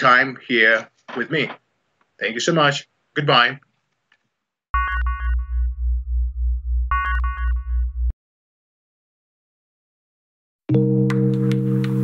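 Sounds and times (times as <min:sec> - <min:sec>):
pulsing synthesizer bass: 0:04.8 - 0:08.1.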